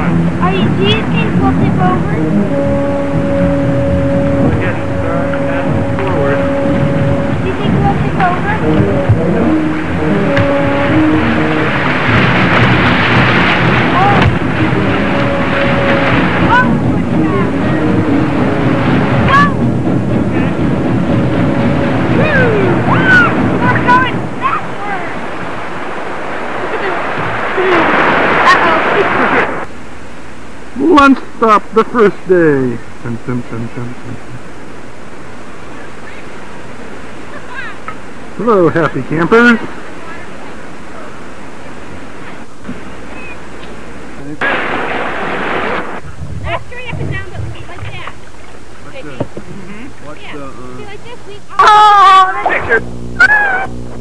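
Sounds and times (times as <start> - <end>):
wind on microphone: 0.0 - 29.7, 41.8 - 48.2
rushing whitewater: 0.0 - 33.0, 33.6 - 49.2
short high voices: 19.2 - 19.6, 51.5 - 53.8.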